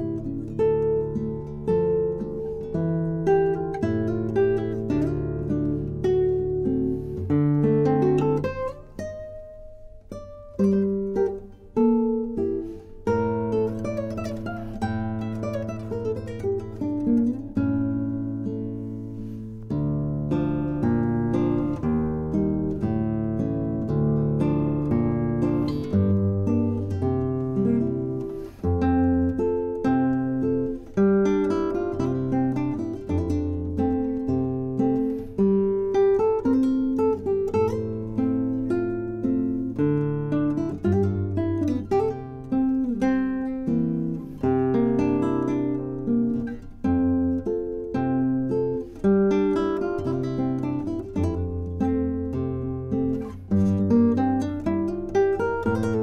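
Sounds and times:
fingerpicked classical guitar: 0:00.0 - 0:56.0.

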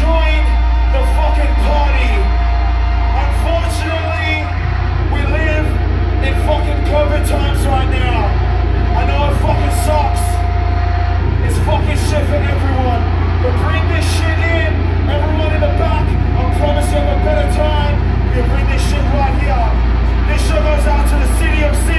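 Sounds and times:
amplifier low rumble: 0:02.2 - 0:21.9.

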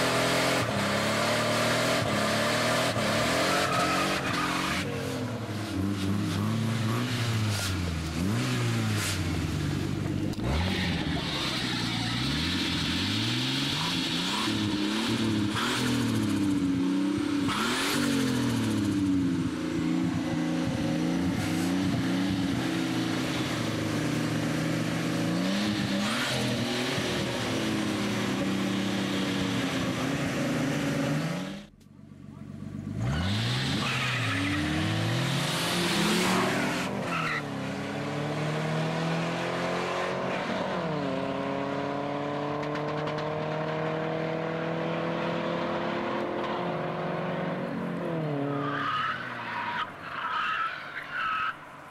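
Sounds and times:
car engines revving: 0:00.0 - 0:51.9
tire squeal: 0:03.0 - 0:07.8, 0:10.4 - 0:16.1, 0:33.0 - 0:35.2, 0:35.8 - 0:37.5, 0:48.3 - 0:51.9.

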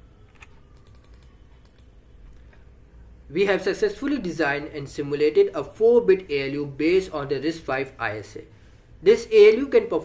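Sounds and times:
computer keyboard key clicks: 0:00.3 - 0:01.9.

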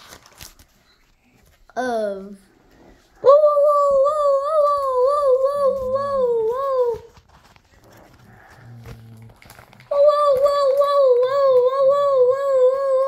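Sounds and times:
child humming: 0:03.2 - 0:07.1, 0:09.9 - 0:13.0.

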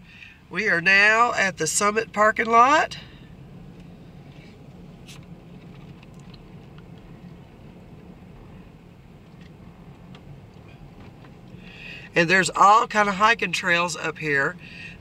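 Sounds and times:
vehicle hum from inside cabin: 0:00.0 - 0:15.0.

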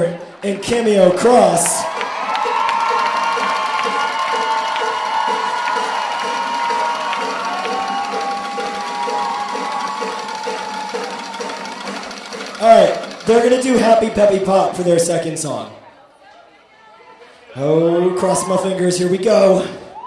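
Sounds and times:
rhythmic clapping: 0:01.1 - 0:14.5
audience cheering and whooping: 0:01.2 - 0:13.3, 0:19.8 - 0:20.0.

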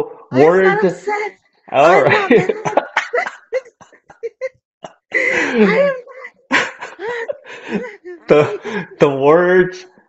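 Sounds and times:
person laughing: 0:01.8 - 0:04.5, 0:05.2 - 0:09.4.

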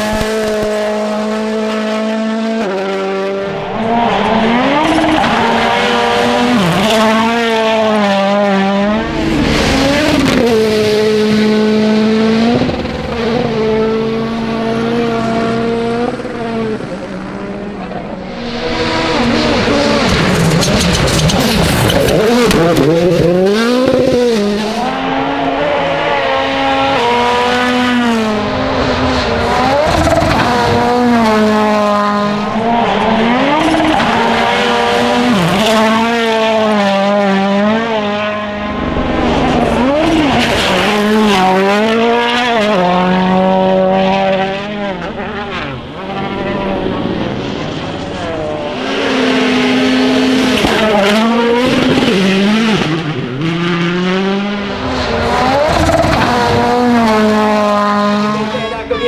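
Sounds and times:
rally car engines at full throttle: 0:00.0 - 0:59.0.

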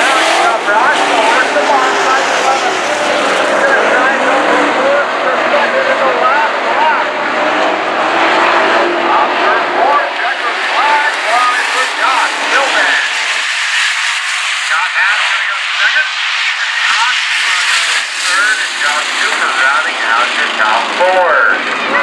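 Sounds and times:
race car engines revving: 0:00.0 - 0:22.0.

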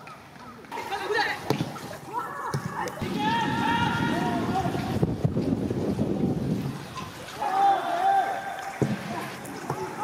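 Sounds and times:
players shouting: 0:02.1 - 0:05.0, 0:07.4 - 0:10.0
wind noise on microphone: 0:03.0 - 0:07.4.

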